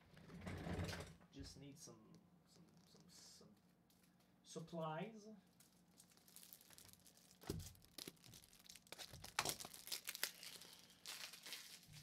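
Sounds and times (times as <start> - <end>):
plastic sleeves crinkling: 5.4 - 12.0.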